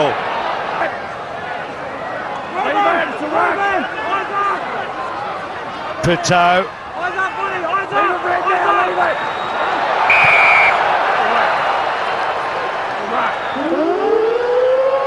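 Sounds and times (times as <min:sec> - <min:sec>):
crowd noise: 0:00.0 - 0:15.0
referee's whistle blast: 0:09.1 - 0:10.8
stadium siren: 0:10.1 - 0:10.8, 0:13.2 - 0:15.0.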